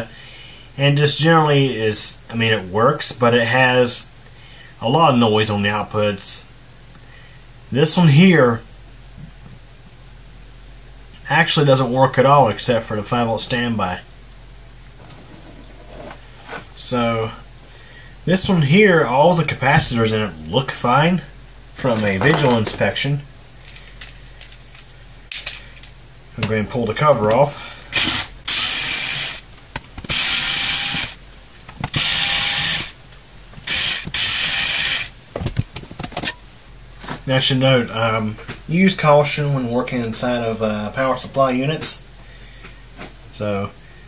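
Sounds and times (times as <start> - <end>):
background hiss: 0.0 - 44.0
faint low hum: 0.0 - 44.0
electric screwdriver whirring: 27.9 - 29.4, 30.1 - 31.2, 31.8 - 33.0, 33.6 - 35.1.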